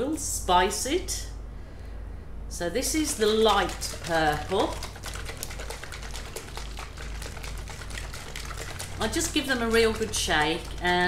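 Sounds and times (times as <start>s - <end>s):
steady low hum: 0.0s - 11.0s
paint bottle being shaken: 2.8s - 11.0s.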